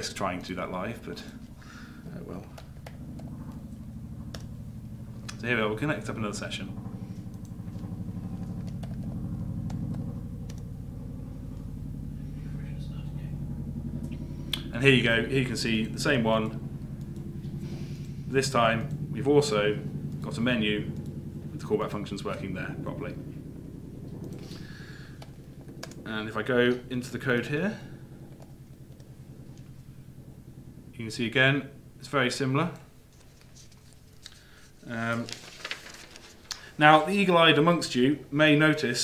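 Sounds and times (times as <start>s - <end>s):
steady low hum: 0.0s - 39.0s.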